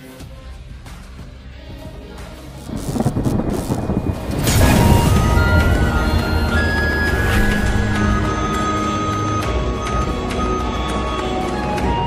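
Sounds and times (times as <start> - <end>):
deep thunder-like rumbling: 2.7 - 9.0.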